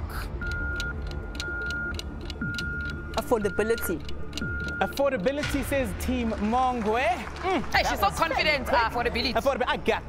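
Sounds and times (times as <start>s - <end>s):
rapid clock ticking: 0.4s - 6.2s.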